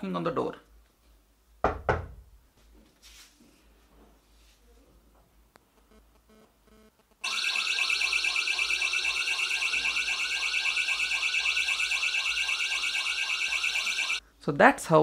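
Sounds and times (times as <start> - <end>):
pulsing electronic alarm: 7.2 - 14.2.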